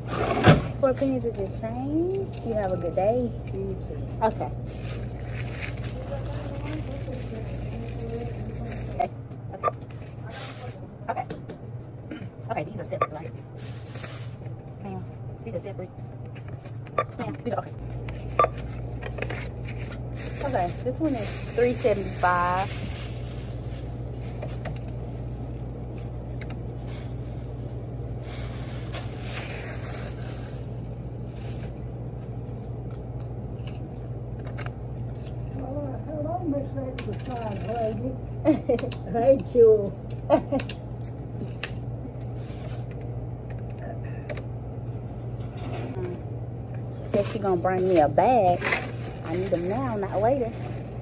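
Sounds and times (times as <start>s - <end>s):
steady low hum: 0.0s - 51.0s
plastic bag rustling: 4.2s - 9.1s, 9.9s - 10.9s, 13.4s - 14.9s, 17.8s - 31.8s, 47.0s - 51.0s.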